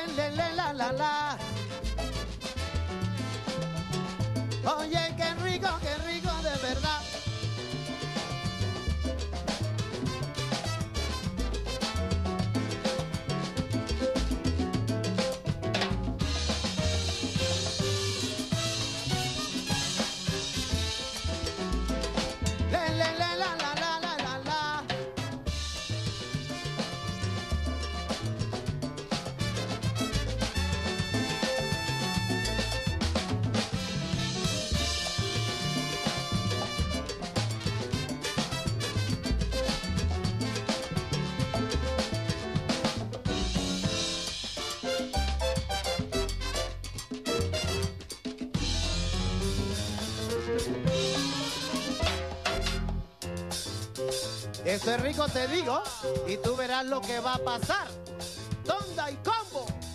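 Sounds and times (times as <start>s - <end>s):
drum kit and latin percussion: 0.0s - 59.9s
salsa band playing: 0.0s - 59.9s.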